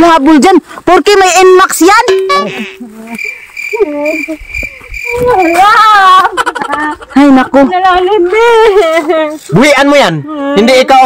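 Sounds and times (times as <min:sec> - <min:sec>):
crickets chirping: 0:00.4 - 0:09.5.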